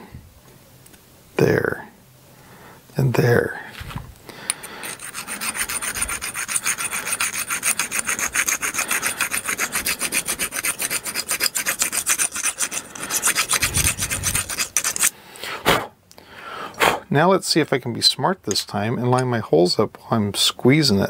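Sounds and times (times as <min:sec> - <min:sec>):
hand file rasping on metal: 0:04.6 - 0:15.2.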